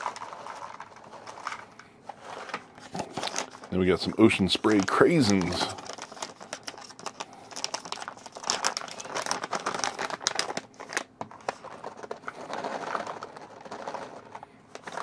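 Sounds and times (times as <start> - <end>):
plastic pouch crinkling: 0.0 - 1.6, 2.8 - 15.0.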